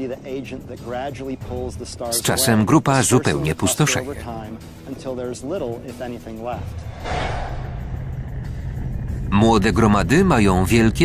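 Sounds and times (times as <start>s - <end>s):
low rumbling music: 0.0s - 11.0s
whoosh: 6.6s - 9.0s.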